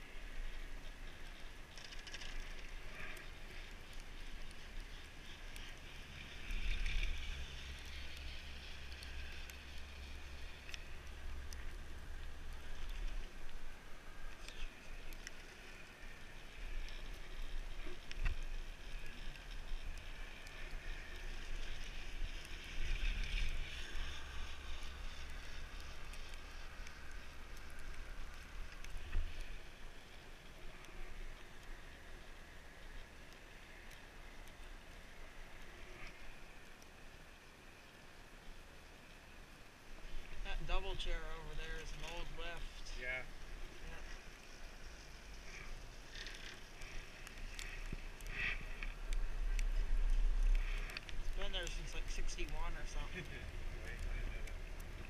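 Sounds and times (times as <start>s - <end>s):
wind rumbling on microphone: 0.0s - 55.0s
faint clicks: 0.3s - 40.5s, 43.9s - 55.0s.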